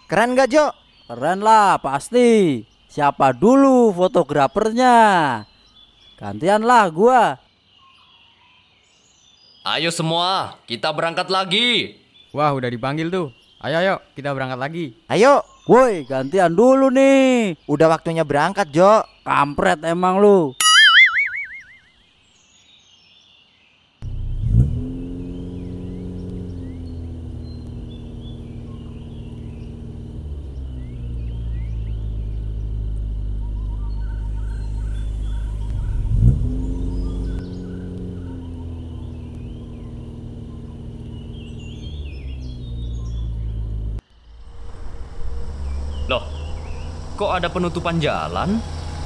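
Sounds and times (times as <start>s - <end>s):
birds chirping faintly: 0.0s - 49.0s
bus engine revving: 24.0s - 49.0s.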